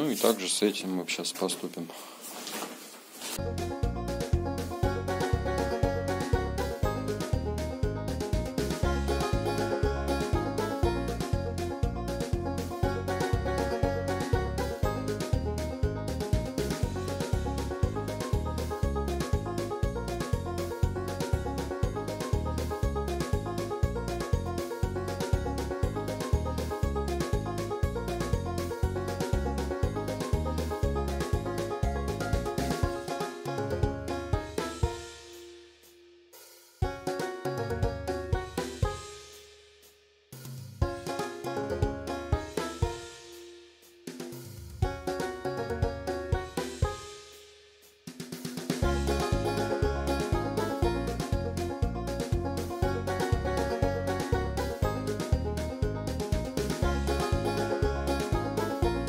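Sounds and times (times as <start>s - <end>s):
background music with steady beat: 3.4s - 59.0s.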